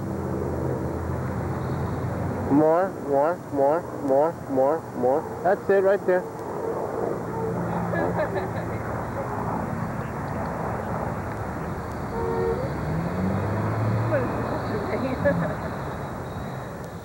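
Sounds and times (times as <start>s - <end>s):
steady outdoor rushing noise: 0.0s - 17.0s.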